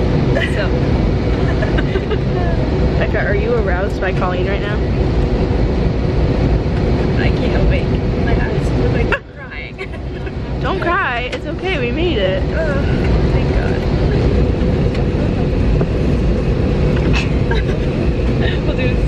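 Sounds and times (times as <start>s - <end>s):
airliner cabin hum: 0.0s - 19.0s.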